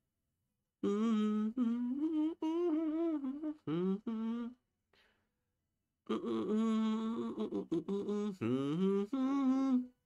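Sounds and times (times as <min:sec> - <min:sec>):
man humming a tune: 0:00.8 - 0:04.6, 0:06.1 - 0:10.0.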